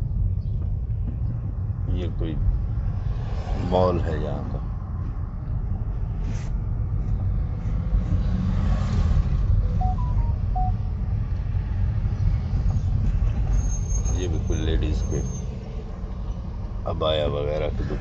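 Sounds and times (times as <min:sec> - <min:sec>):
car engine and tyre rumble: 0:00.0 - 0:18.0
short beeps: 0:09.8 - 0:10.8.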